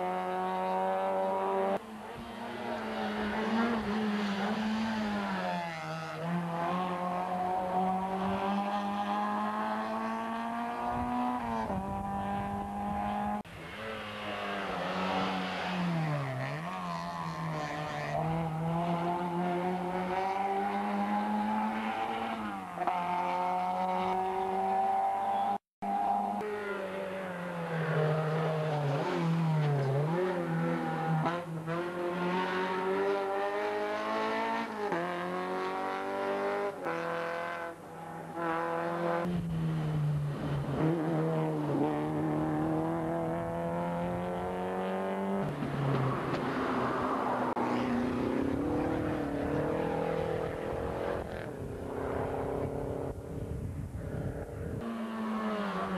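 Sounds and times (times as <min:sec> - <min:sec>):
rally car engines revving: 0:00.0 - 0:53.5, 0:54.1 - 0:55.9.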